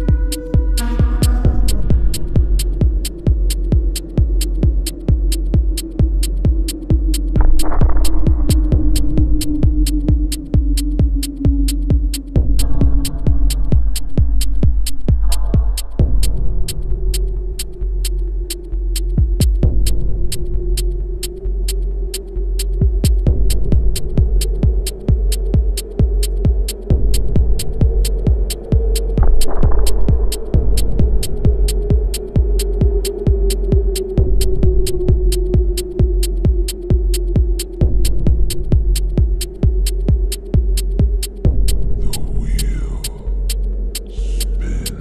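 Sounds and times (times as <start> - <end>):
deep sub-bass: 0.0 - 45.0
percussion ticks: 0.0 - 45.0
wavering low drone: 0.0 - 45.0.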